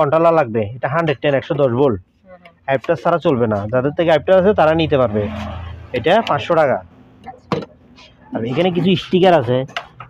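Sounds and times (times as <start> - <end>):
man talking: 0.0 - 2.0, 2.7 - 5.4, 6.0 - 6.8, 8.3 - 9.8.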